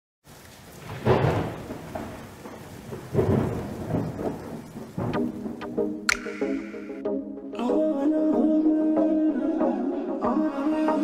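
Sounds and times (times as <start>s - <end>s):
steady rain: 0.2s - 7.0s
thunder rolling: 0.7s - 5.8s
sharp percussive hits: 5.0s - 7.3s.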